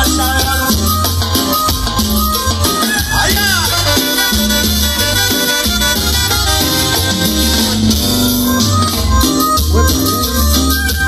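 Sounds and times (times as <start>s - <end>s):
live cumbia band playing: 0.0s - 11.0s.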